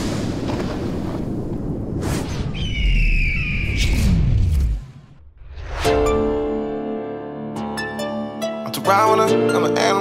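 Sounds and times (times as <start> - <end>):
descending eagle-like screech: 2.2 - 4.6.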